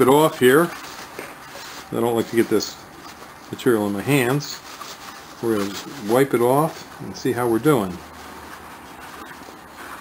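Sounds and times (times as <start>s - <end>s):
low steady hiss: 0.0s - 10.0s.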